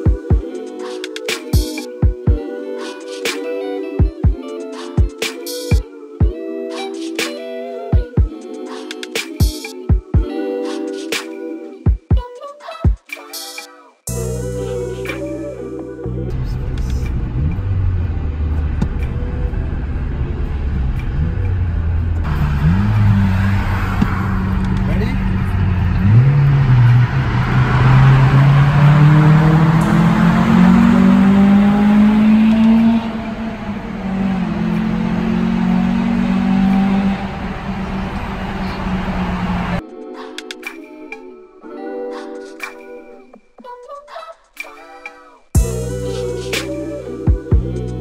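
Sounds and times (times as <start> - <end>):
car engine accelerating: 15.0 - 39.8
road noise inside car: 16.3 - 39.8.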